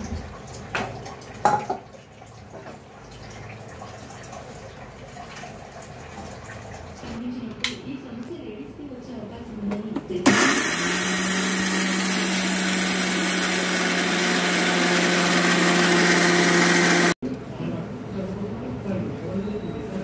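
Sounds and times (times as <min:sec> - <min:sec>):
electric mixer grinder whirring: 0:10.2 - 0:17.2.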